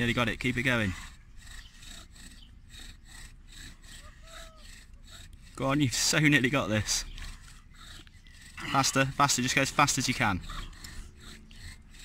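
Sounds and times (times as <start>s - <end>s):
bow drill friction rasp: 0.0s - 12.0s.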